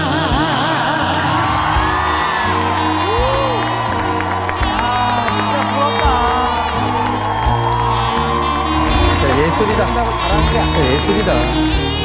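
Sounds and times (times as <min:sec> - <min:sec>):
live band playing slow ballad: 0:00.0 - 0:12.0
audience whooping and cheering: 0:00.9 - 0:12.0.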